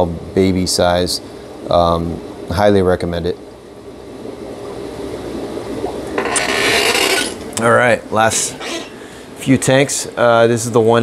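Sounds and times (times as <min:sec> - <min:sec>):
low steady hum: 0:00.0 - 0:11.0
rubbing scraping noise: 0:06.2 - 0:07.5, 0:08.6 - 0:09.0.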